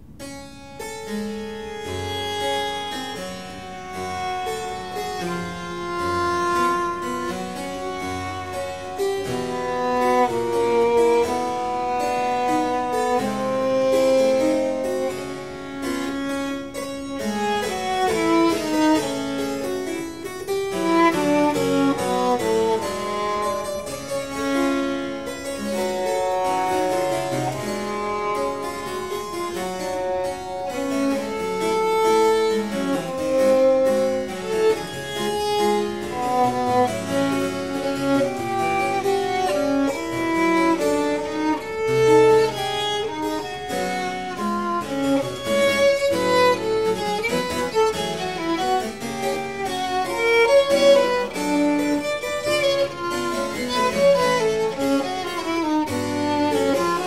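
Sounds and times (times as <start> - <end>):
bowed violin melody: 0.0 - 57.0
harpsichord plucked chords: 0.0 - 57.0.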